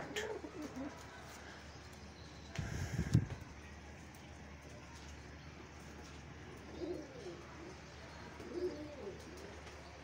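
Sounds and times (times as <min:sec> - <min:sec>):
pigeon cooing: 0:00.0 - 0:01.0, 0:06.7 - 0:07.5, 0:08.4 - 0:09.6.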